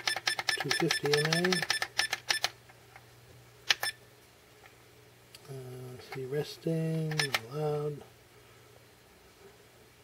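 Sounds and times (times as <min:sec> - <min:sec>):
battery charger key-press beeps: 0:00.0 - 0:02.5, 0:03.7 - 0:04.0.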